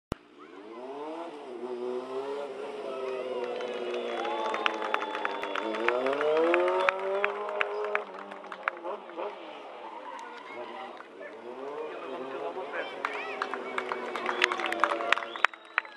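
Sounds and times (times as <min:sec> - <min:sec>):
motorcycle engine revving: 0:00.2 - 0:15.1.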